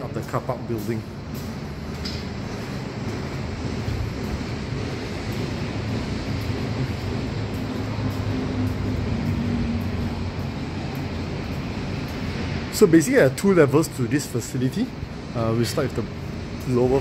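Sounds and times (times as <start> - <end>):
traffic rumble: 0.0 - 17.0.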